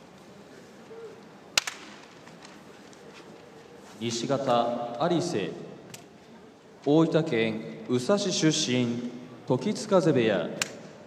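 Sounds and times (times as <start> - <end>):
loud sharp crack: 1.5 - 2.2, 10.6 - 11.0.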